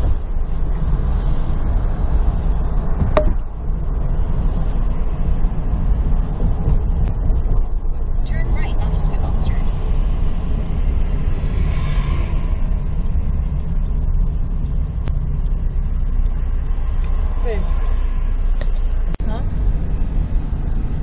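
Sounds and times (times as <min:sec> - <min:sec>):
vehicle engine and road rumble: 0:00.0 - 0:21.0
passing vehicle hiss: 0:11.0 - 0:13.8.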